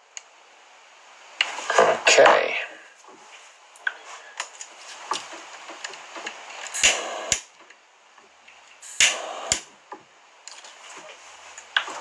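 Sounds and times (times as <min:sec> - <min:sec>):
lighter gas hiss: 0:06.5 - 0:07.5, 0:08.8 - 0:09.7
lighter click: 0:09.0 - 0:09.7.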